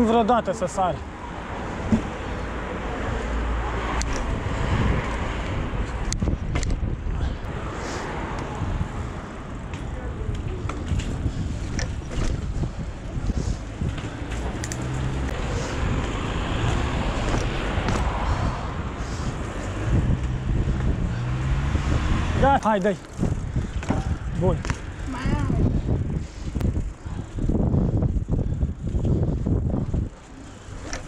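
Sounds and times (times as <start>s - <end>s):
bike tyres rolling on pavement: 0.0s - 31.0s
wind noise on microphone: 3.0s - 9.4s, 10.1s - 31.0s
bike clicks and rattles: 3.9s - 7.3s, 8.3s - 18.4s, 19.0s - 31.0s.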